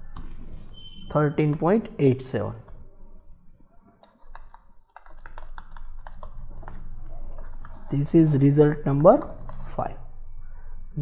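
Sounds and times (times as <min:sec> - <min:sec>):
low steady hum: 0:05.5 - 0:11.0.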